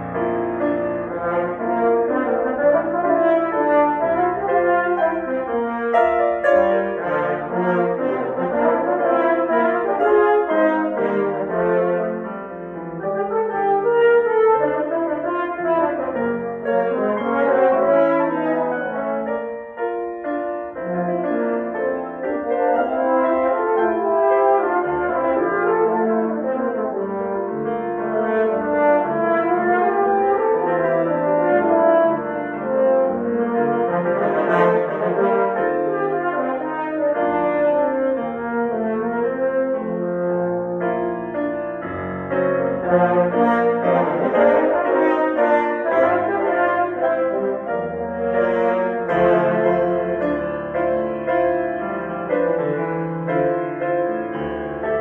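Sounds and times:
french horns playing: 0:00.0 - 0:19.6, 0:20.7 - 0:55.0
piano accompaniment: 0:00.0 - 0:55.0.

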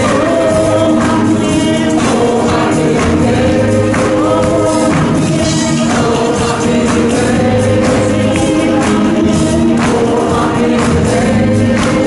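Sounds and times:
choir singing gospel music: 0:00.0 - 0:12.0
percussive hits: 0:00.0 - 0:12.0.

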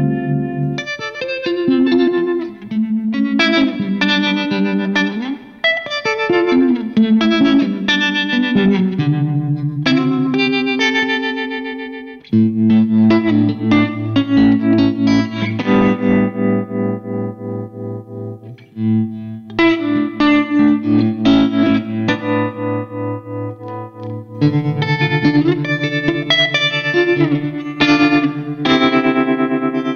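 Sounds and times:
electric guitar chords with tremolo: 0:00.0 - 0:29.9.

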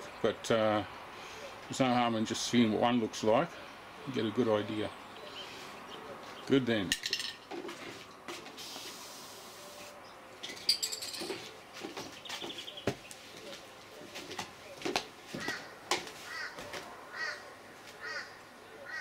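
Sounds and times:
bird calling: 0:04.9 - 0:06.6, 0:15.4 - 0:19.0.

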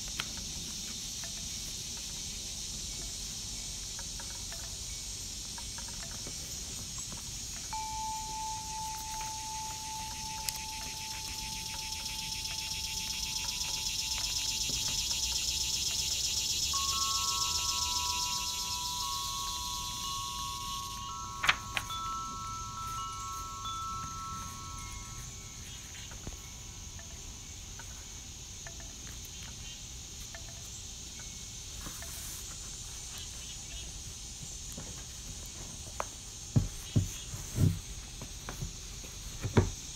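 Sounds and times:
high insect buzz: 0:00.0 - 0:39.9
wind chimes ringing: 0:01.0 - 0:32.9.

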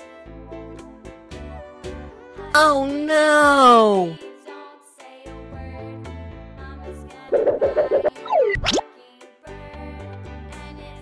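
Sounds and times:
children's background music: 0:00.0 - 0:11.0
cartoon falling whistle glide: 0:07.3 - 0:08.8
quick rising pop: 0:07.3 - 0:08.8.

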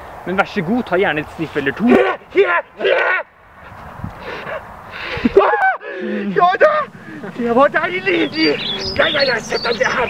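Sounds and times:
person sniffing: 0:04.2 - 0:05.3.

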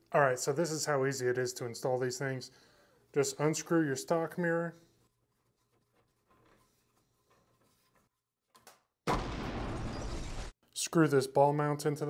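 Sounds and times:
faint handling sounds: 0:02.9 - 0:08.2.

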